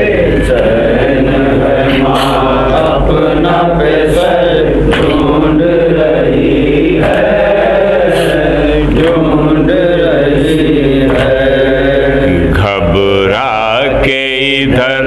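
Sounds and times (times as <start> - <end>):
men chanting into a microphone: 0.0 - 15.0.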